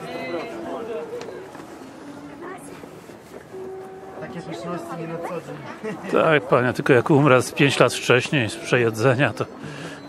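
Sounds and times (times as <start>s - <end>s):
faint music with long notes: 0.0s - 10.0s
murmur of voices: 0.0s - 10.0s.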